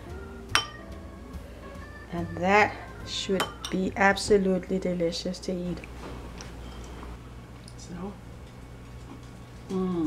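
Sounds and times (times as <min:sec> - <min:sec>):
faint background music: 0:00.0 - 0:06.0.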